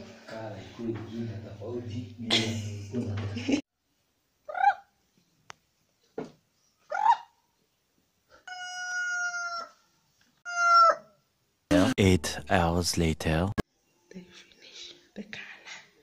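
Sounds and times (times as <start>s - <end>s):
chickens squawking: 4.5s - 4.9s, 6.9s - 7.4s, 8.4s - 11.2s
rooster crowing: 8.5s - 9.8s.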